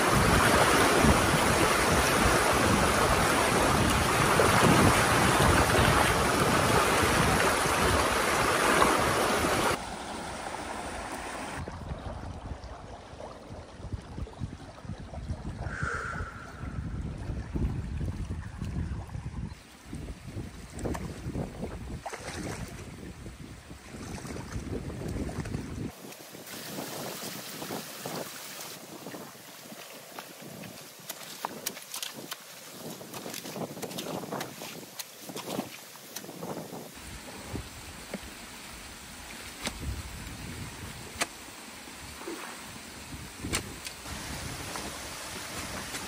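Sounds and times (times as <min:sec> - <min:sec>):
wind on microphone: 0:00.0 - 0:09.8, 0:11.4 - 0:38.1, 0:39.6 - 0:41.2, 0:42.0 - 0:46.0
water rushing: 0:00.0 - 0:15.0, 0:25.2 - 0:46.0
water sloshing: 0:23.9 - 0:36.6
water running hiss: 0:25.9 - 0:31.6
rake working in sticks: 0:30.5 - 0:36.6.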